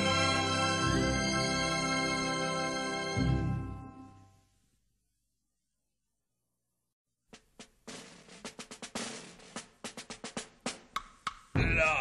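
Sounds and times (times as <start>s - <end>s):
snare drum hits: 7.4s - 11.5s.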